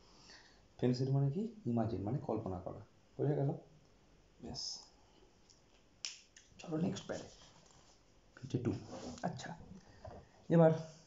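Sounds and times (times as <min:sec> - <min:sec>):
man talking: 0:00.8 - 0:03.7, 0:04.4 - 0:04.9, 0:06.6 - 0:07.4, 0:08.4 - 0:09.8, 0:10.5 - 0:10.9.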